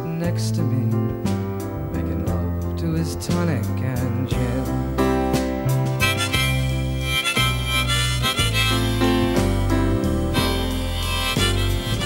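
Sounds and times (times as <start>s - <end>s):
piano and band accompaniment: 0.0s - 12.0s
harmonica melody: 4.8s - 12.0s.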